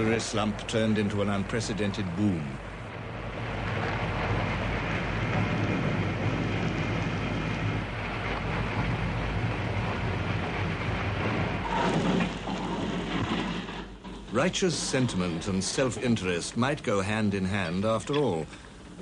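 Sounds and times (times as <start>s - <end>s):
low hum: 0.0s - 19.0s
steelworks roar and rumble: 0.0s - 19.0s.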